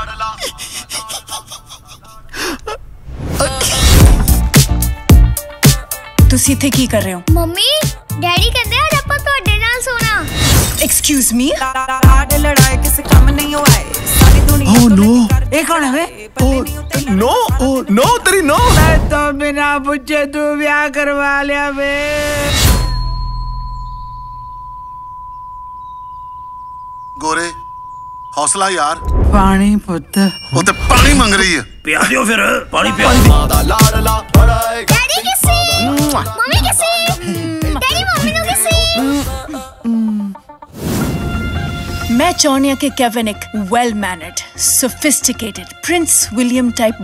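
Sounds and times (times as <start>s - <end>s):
high-pitched electronic beep: 22.4s - 34.1s
deep rumble: 29.0s - 30.0s
short voiced breaths: 37.1s - 37.7s
person gasping breathily: 37.2s - 37.8s.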